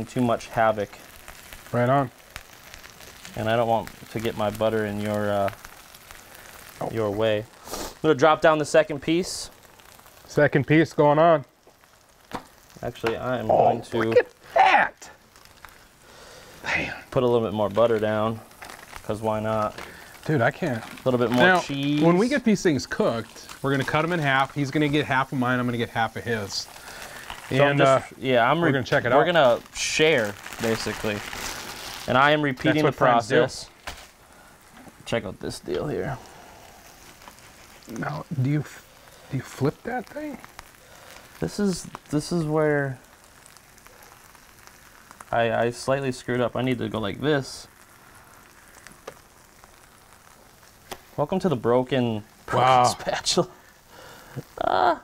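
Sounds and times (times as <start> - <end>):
sandwiches sizzling on griddle: 0.0 - 55.0
person speaking: 12.8 - 15.2, 19.1 - 26.8, 27.5 - 31.3, 32.0 - 33.7, 34.8 - 36.2, 37.9 - 40.5, 51.2 - 53.6.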